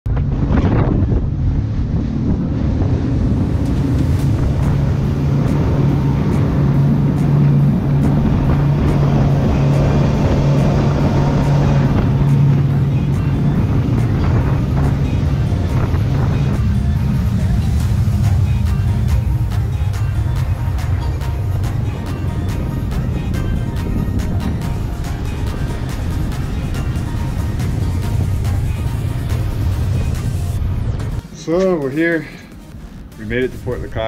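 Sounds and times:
wind on microphone: 0:00.0 - 0:31.2
water rushing past hull: 0:00.1 - 0:31.4
outboard motors droning: 0:00.1 - 0:34.0.

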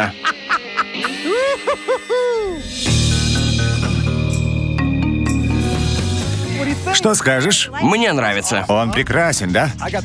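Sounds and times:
soft background music beats: 0:00.0 - 0:10.0.

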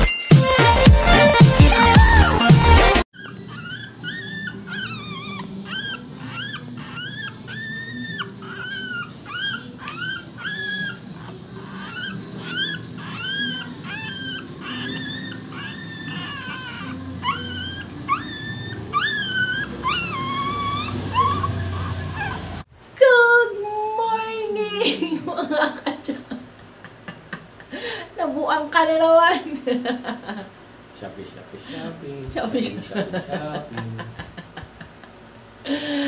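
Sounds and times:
puppy whimpering: 0:01.8 - 0:22.7.

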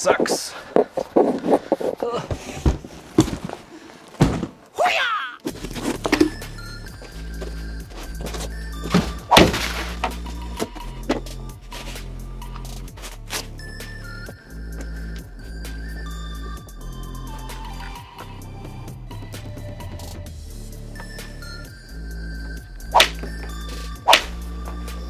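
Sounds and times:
cardboard box thuds and knocks: 0:04.2 - 0:04.6, 0:08.8 - 0:10.1
box scraping: 0:05.5 - 0:12.1
background music with low beat: 0:05.5 - 0:25.0.

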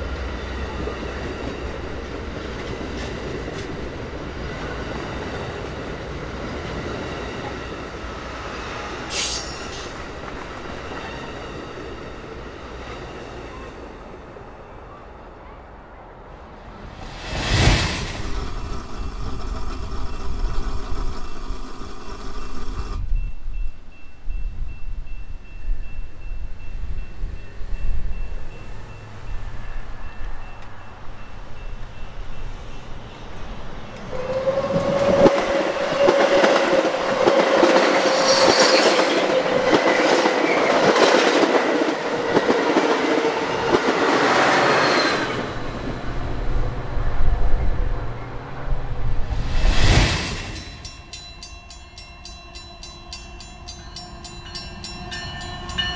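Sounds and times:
train passing on rails: 0:00.0 - 0:55.9.

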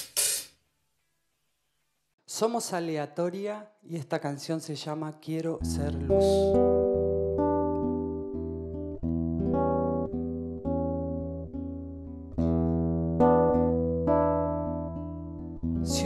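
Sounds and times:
acoustic guitar chords: 0:05.6 - 0:16.0.

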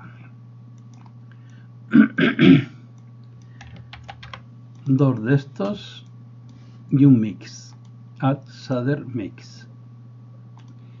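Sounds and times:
man coughing: 0:01.9 - 0:02.8
computer clicks: 0:10.6 - 0:10.8.

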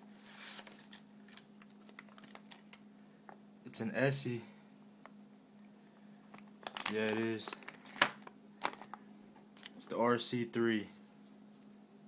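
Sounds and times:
faint steady hum: 0:00.0 - 0:12.0
plastic and cardboard rustling: 0:00.1 - 0:02.8, 0:06.3 - 0:09.0, 0:09.6 - 0:09.9
light crinkles and ticks: 0:06.3 - 0:07.8.

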